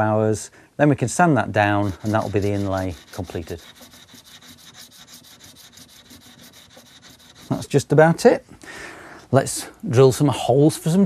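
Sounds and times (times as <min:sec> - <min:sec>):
sandpaper rubbing on wood: 0:01.6 - 0:07.8.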